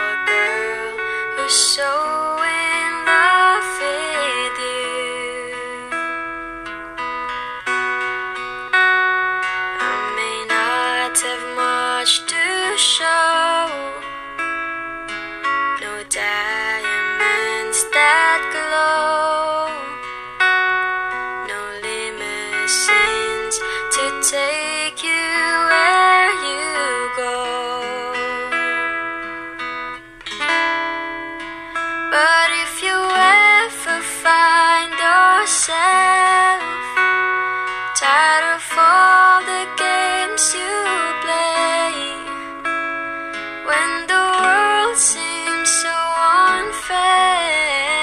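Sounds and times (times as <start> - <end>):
woman singing: 0.0 - 6.8, 7.6 - 29.5, 30.2 - 48.0
plucked guitar: 0.0 - 48.0.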